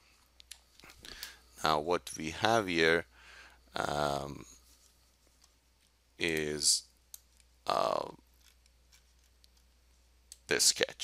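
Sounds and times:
steady low hum: 0.0 - 11.0
person saying uh: 3.8 - 4.4.

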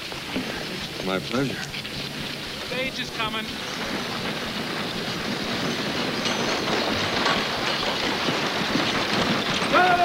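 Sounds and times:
hoofbeats clattering: 0.0 - 10.0
wooden wheels rattling: 0.0 - 10.0.

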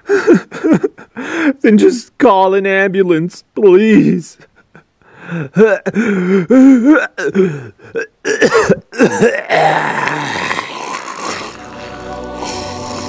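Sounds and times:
man groaning and gasping: 5.2 - 13.0
man coughing: 6.6 - 9.9.

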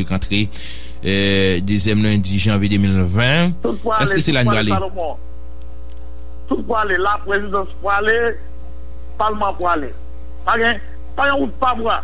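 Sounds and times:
man talking: 0.0 - 4.8
steady low hum: 0.0 - 12.0.

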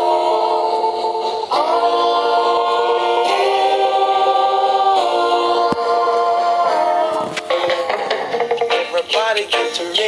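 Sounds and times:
choir singing chords: 0.0 - 8.6.

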